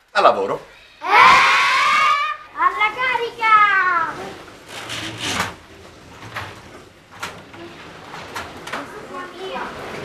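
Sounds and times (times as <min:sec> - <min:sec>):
faint children's voices: 0:08.6 - 0:10.0.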